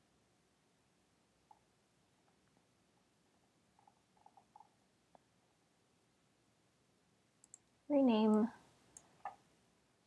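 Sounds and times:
computer mouse clicks: 3.8s - 5.3s, 7.4s - 9.4s.

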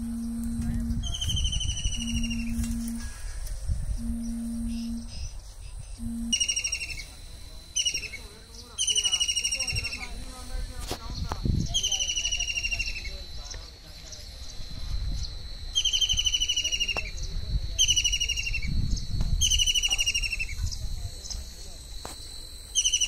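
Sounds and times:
kingfisher shrill descending trills: 0.0s - 3.1s
low hoot-like tone: 0.0s - 10.7s, 14.4s - 23.0s.

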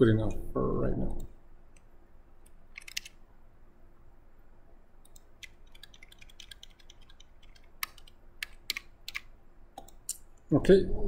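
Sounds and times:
computer mouse clicks: 1.1s - 3.2s, 5.0s - 10.2s.

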